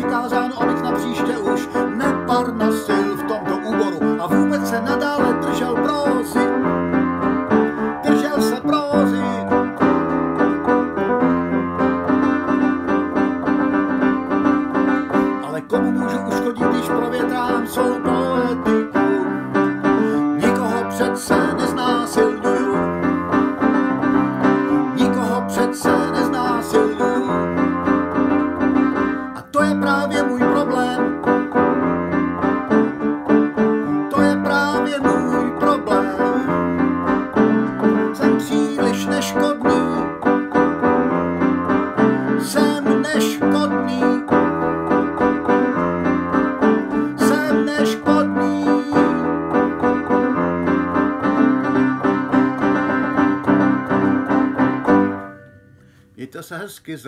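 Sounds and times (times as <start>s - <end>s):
piano chords: 0.0s - 56.0s.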